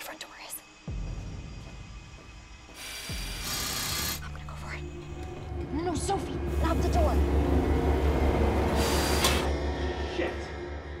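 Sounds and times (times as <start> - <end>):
low pulsing bass drone: 4.5 - 11.0.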